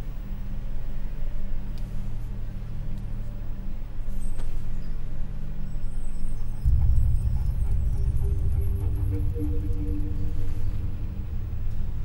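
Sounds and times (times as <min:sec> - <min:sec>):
low notes of film-score music: 0:00.0 - 0:12.0
car interior rumble: 0:06.6 - 0:12.0
deep bass swell: 0:06.6 - 0:12.0.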